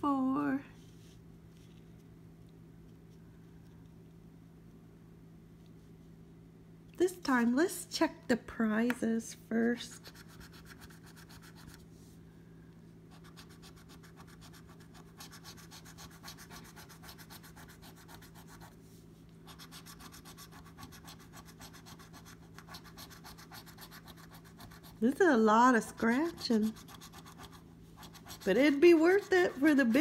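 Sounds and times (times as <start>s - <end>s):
coin scratching lottery ticket: 26.0s - 30.0s.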